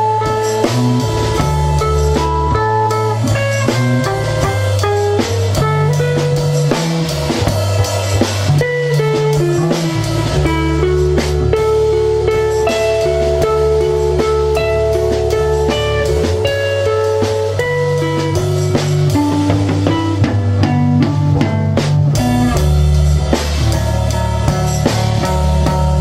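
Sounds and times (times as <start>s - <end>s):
bass line: 0.0s - 26.0s
drum kit and cymbal hits: 0.0s - 26.0s
electric guitar melody: 0.0s - 26.0s.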